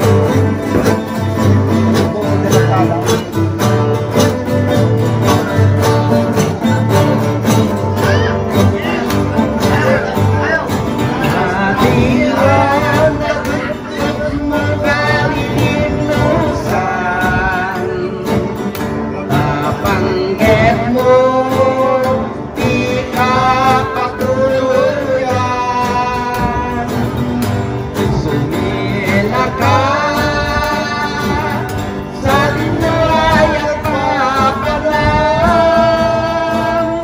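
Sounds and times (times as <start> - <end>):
men singing slow song: 0.0 - 37.0
strummed acoustic guitars: 0.0 - 37.0.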